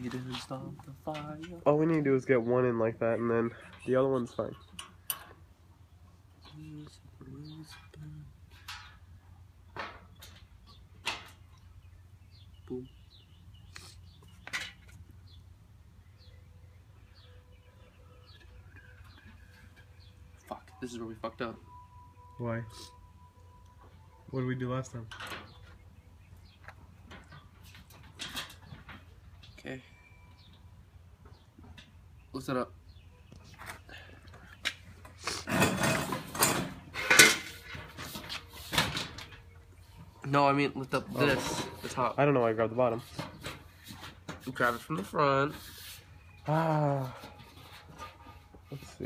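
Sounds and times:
grill hardware scraping and clicking: 7.4 - 9.1, 25.0 - 25.8, 26.4 - 29.6, 34.5 - 39.5, 40.2 - 46.0.

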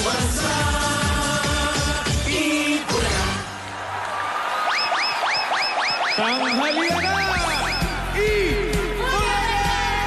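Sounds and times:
electronic theme music: 4.5 - 10.0.

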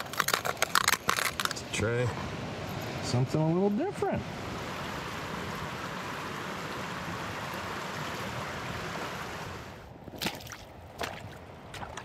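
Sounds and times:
stream water flowing: 0.5 - 12.0.

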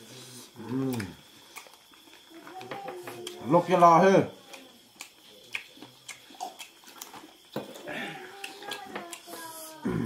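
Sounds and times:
lip-smacking and chewing: 0.9 - 2.2, 4.5 - 7.6, 8.4 - 9.7
grunt-like mouth sound: 9.8 - 10.0.

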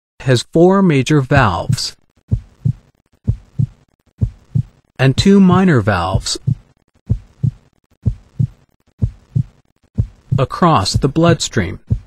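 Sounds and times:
heartbeat thumps: 1.3 - 12.0.

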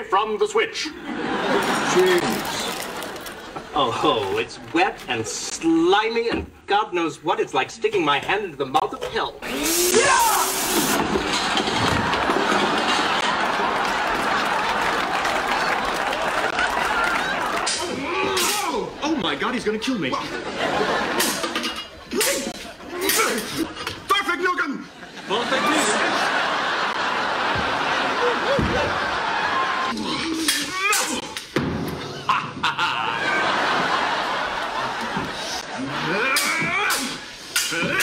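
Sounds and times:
audience laughing and applauding: 0.9 - 4.7, 9.5 - 19.2, 20.1 - 23.5, 24.9 - 30.0, 32.1 - 38.0.

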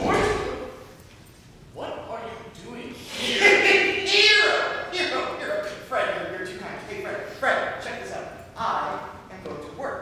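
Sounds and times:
performer shouting: 4.0 - 4.9.

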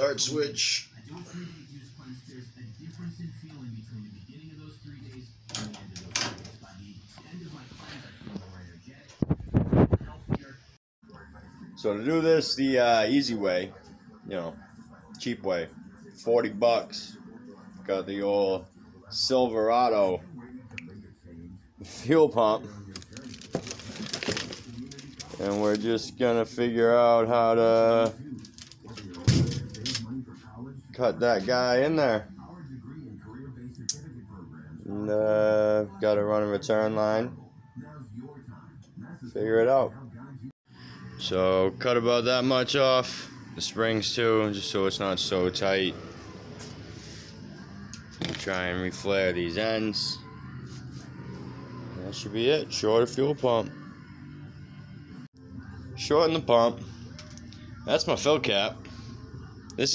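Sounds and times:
faint background voices: 0.0 - 59.9.

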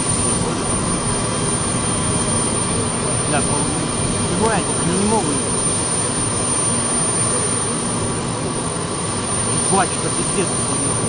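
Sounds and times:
jet airliner flying overhead: 0.0 - 11.0.

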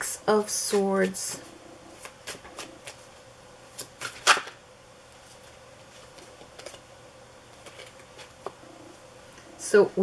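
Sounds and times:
cards being thumbed through: 3.8 - 4.6.

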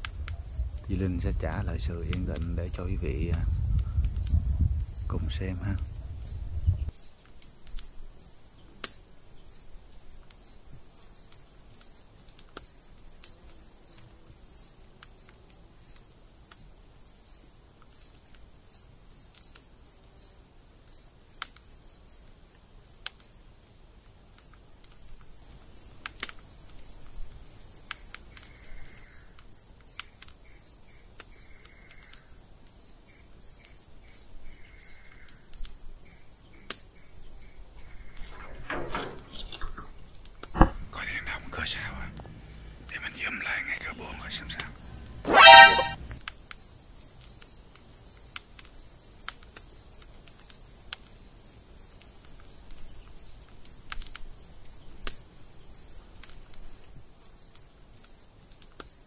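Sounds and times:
crickets chirping: 0.0 - 19.3, 23.6 - 29.8, 30.4 - 45.6
steady high-pitched hiss: 0.0 - 29.8, 30.4 - 59.0.

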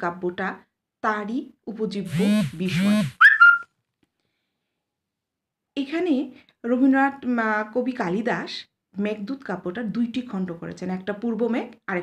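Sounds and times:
high whistle-like tone: 2.8 - 3.7.

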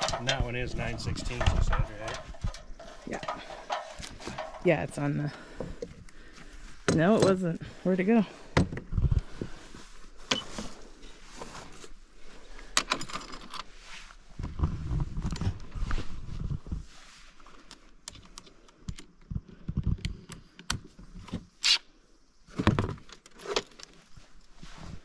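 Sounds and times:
metal tool parts clinking: 0.0 - 0.5.

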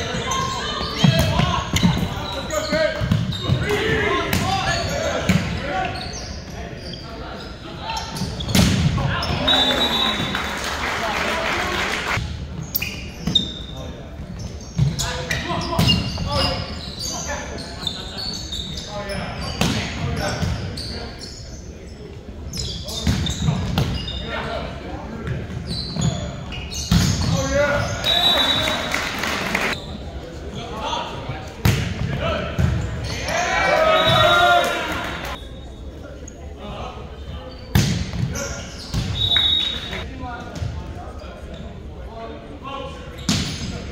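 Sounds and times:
players calling out: 32.2 - 35.4.

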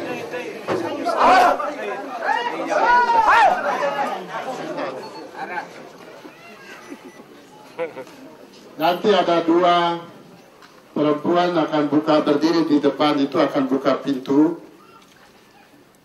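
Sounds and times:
crowd chattering: 0.0 - 16.0.

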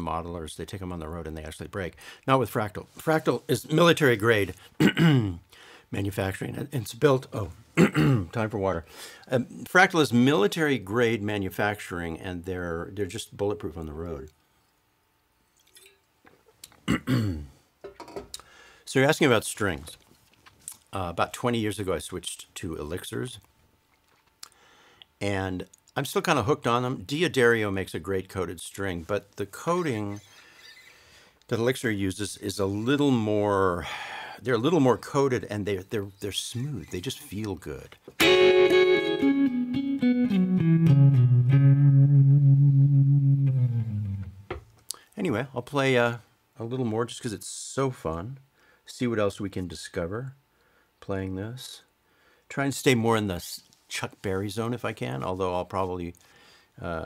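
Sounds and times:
man clearing throat: 4.8 - 5.4, 7.8 - 8.3, 16.8 - 17.6
electric guitar picked notes: 38.2 - 44.6.

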